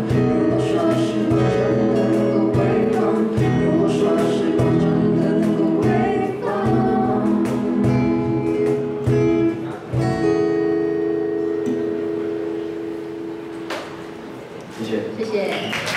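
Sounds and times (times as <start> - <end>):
woman singing: 0.0 - 8.4
acoustic guitars strumming: 0.0 - 14.7
cajon hits: 13.5 - 14.1.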